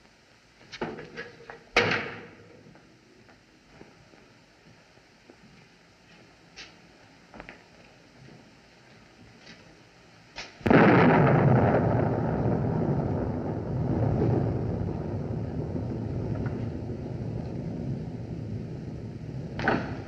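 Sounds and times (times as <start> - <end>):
thunder crack and rumble: 10.6 - 20.0.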